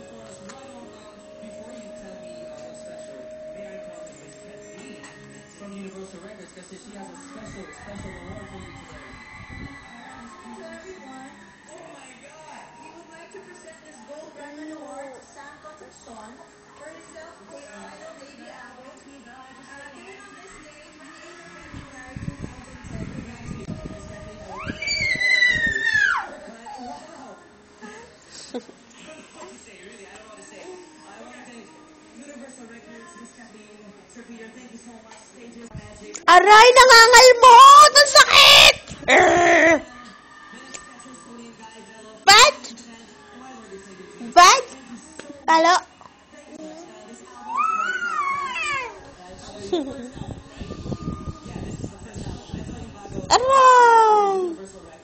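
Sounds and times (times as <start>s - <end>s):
high-pitched meow-like cry: 24.5s - 26.4s, 47.4s - 49.0s
toddler squealing: 24.6s - 26.4s, 47.4s - 49.0s.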